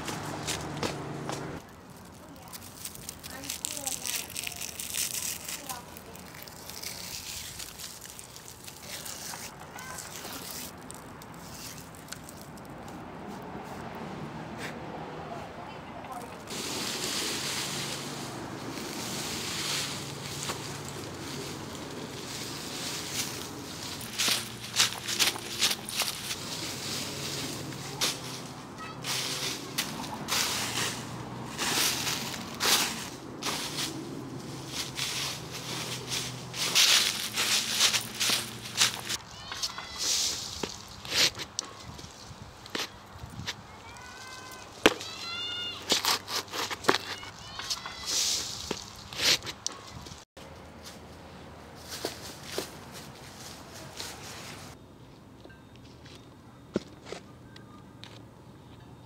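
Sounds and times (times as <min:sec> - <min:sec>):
dry leaves crunching: 0:00.0 - 0:13.8, 0:16.1 - 0:54.8.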